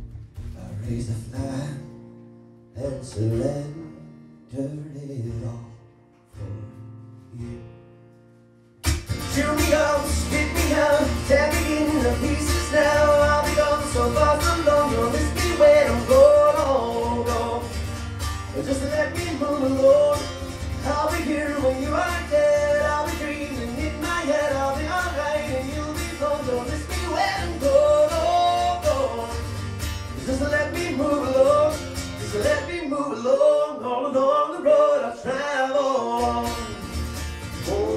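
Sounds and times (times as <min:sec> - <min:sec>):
acoustic guitar strumming: 0:00.0 - 0:37.9
man singing: 0:00.5 - 0:02.0, 0:02.7 - 0:07.8, 0:09.2 - 0:37.9.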